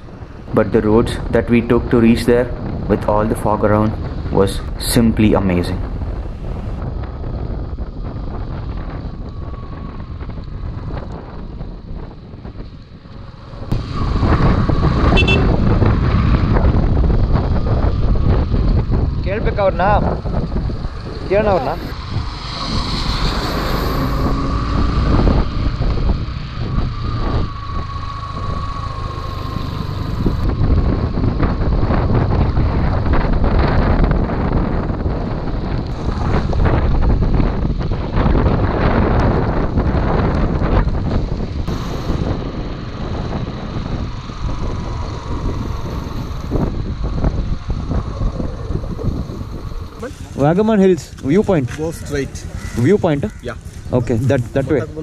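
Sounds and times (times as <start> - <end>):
wind rushing over microphone: 0.0 - 55.0
motorcycle engine: 5.8 - 55.0.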